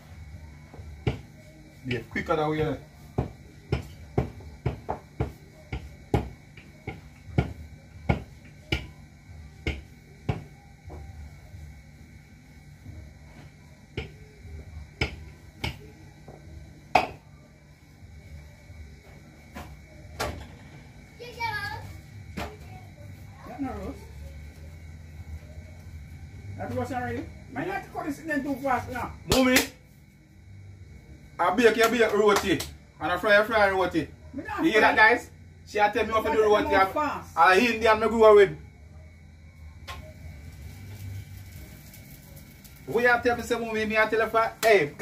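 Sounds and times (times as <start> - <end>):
rolling pin knocking on counter: 0.7 - 1.3, 2.6 - 9.0, 9.6 - 11.0, 15.0 - 17.2.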